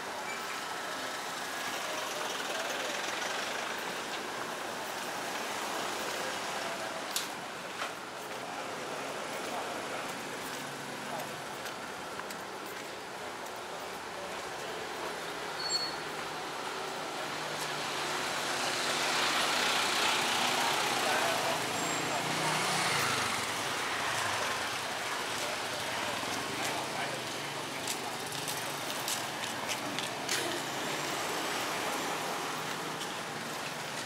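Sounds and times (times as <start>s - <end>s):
vehicles passing on road: 0.0s - 34.0s.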